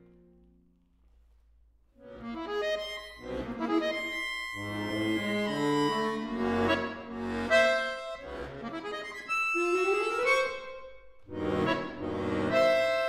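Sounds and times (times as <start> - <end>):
accordion chords: 1.9 - 13.0.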